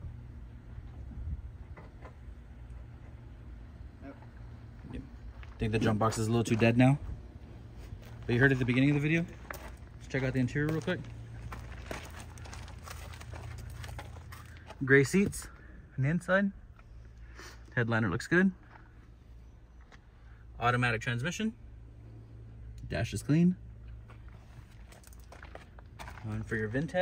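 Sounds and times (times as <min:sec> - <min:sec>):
low hum: 0:00.0 - 0:27.0
steady low rumble: 0:00.0 - 0:27.0
footsteps on gravel: 0:04.2 - 0:15.6, 0:23.9 - 0:27.0.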